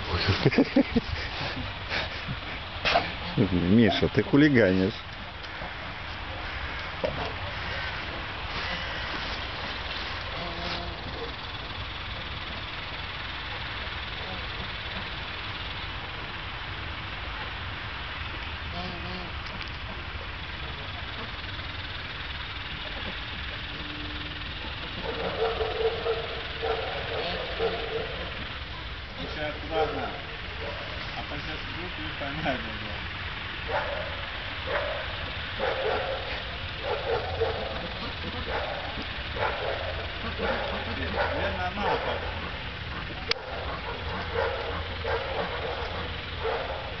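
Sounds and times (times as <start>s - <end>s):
indistinct voices talking: 0.0s - 47.0s
low background rumble: 0.0s - 47.0s
short animal calls: 5.5s - 12.1s, 18.7s - 20.1s, 20.8s - 29.0s.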